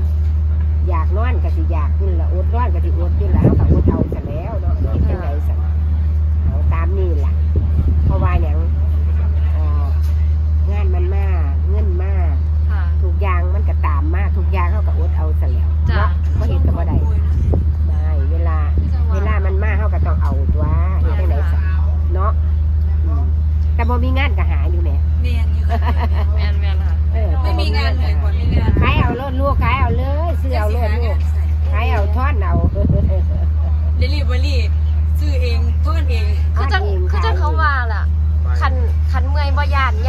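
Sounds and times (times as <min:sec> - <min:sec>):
loud steady low hum: 0:00.0 - 0:40.0
low motor rumble: 0:00.0 - 0:40.0
voices talking: 0:00.0 - 0:40.0.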